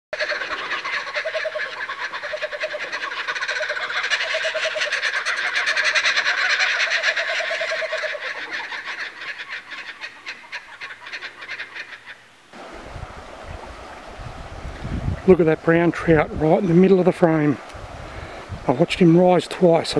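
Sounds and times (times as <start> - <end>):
birds chattering and calling: 0.2 - 12.3
faint low outdoor noise: 0.2 - 19.9.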